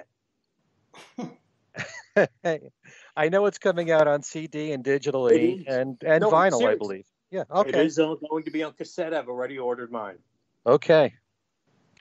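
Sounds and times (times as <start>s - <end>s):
man coughing: 1.8s - 2.6s, 5.3s - 6.9s, 7.7s - 8.9s
man breathing: 2.8s - 3.2s.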